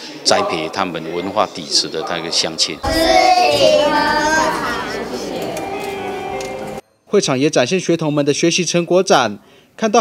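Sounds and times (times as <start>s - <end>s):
children singing: 2.6s - 6.2s.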